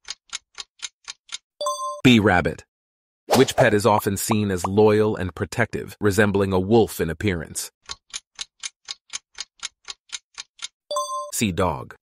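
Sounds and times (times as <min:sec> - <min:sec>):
clock ticking: 0:00.0 - 0:02.0, 0:07.8 - 0:11.7.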